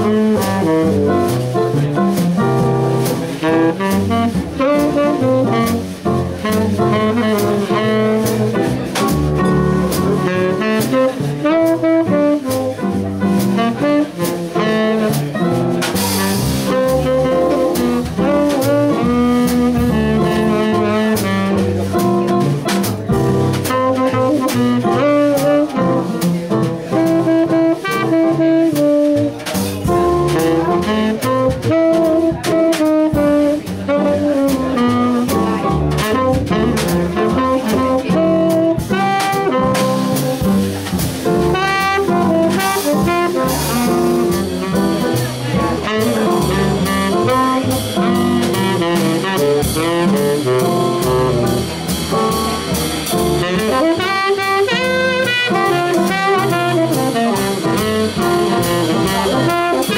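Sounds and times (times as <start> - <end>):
jazz combo playing: 0.0 - 59.9
saxophone lead: 0.0 - 59.9.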